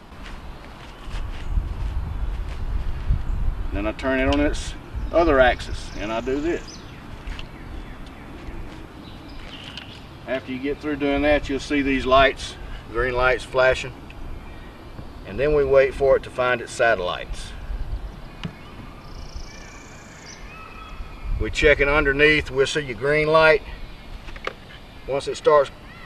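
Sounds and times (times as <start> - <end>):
wind rumble on microphone: 0.0 - 10.1, 17.0 - 19.6, 20.4 - 23.2
bird trill: 18.1 - 21.4.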